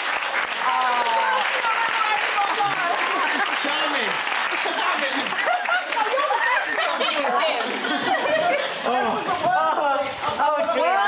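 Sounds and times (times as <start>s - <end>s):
people chuckling: 4.6s - 10.2s.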